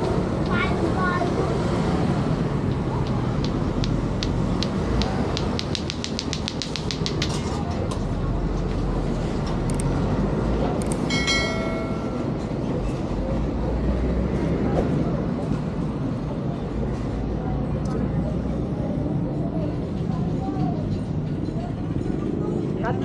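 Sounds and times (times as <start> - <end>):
crowd chatter: 0.0 - 23.0
dense background noise: 0.0 - 23.0
run of clicks: 2.7 - 7.4.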